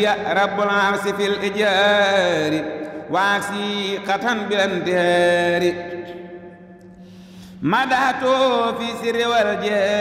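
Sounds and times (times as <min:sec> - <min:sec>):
man chanting: 0:00.0 - 0:06.5, 0:07.5 - 0:10.0.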